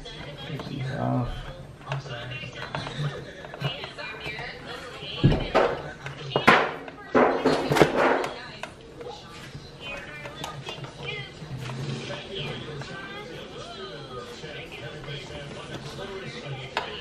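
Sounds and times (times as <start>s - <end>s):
faint background music: 0.0s - 17.0s
faint voices: 0.0s - 17.0s
knocks and rustles of plastic parts: 5.2s - 8.7s.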